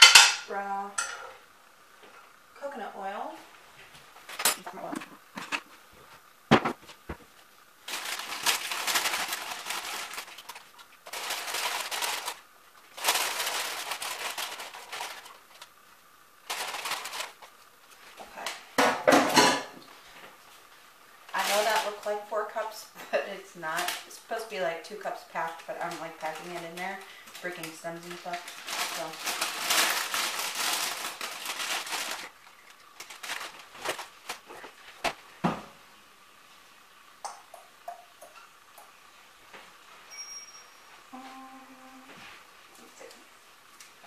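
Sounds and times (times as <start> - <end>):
woman speaking: 0.5 - 1.0, 2.6 - 3.4, 4.6 - 5.2, 21.3 - 29.3
plastic bag crinkling: 6.9 - 18.5, 21.3 - 22.2, 23.7 - 35.2.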